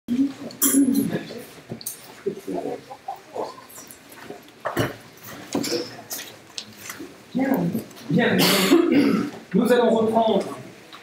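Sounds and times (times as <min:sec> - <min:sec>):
man speaking into a microphone: 0:08.1 - 0:10.8
man clearing throat: 0:08.4 - 0:09.4.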